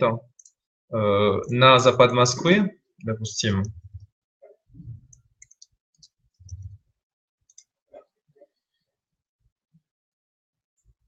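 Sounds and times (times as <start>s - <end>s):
computer mouse clicks: 5.1s - 6.8s.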